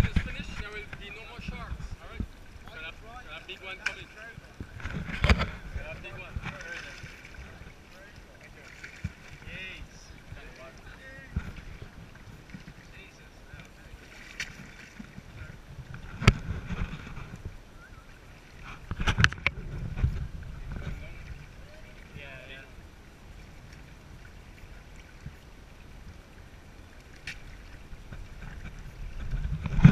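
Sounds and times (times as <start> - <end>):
wind on microphone: 0.0 - 2.8, 4.3 - 7.8, 9.0 - 13.0, 14.5 - 17.8, 18.5 - 26.8, 27.5 - 29.9
water splashing against boat: 0.0 - 29.9.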